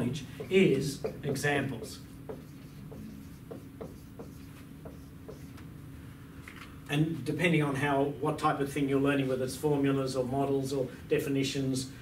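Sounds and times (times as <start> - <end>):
marker pen writing on whiteboard: 0.0 - 5.7.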